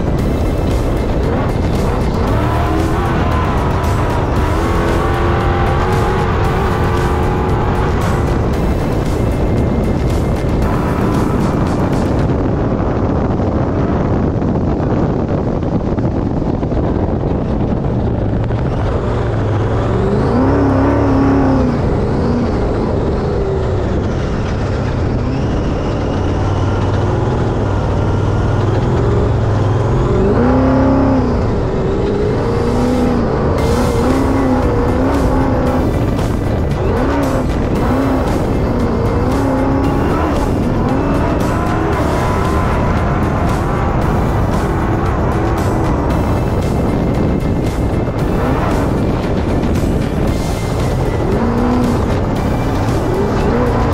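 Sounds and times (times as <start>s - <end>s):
race car engine revving: 0.0s - 15.3s, 16.0s - 53.9s
wind and tyre noise: 0.0s - 53.9s.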